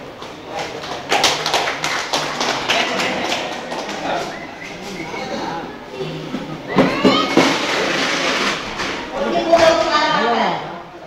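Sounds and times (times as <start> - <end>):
voices: 0.0 - 11.0.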